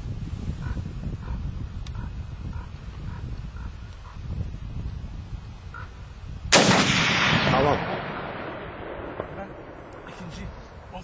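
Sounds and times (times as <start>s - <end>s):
steady low rumble: 6.5s - 11.0s.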